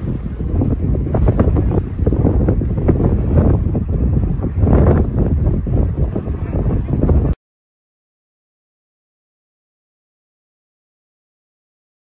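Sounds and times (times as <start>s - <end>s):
wind buffeting microphone: 0.0s - 7.4s.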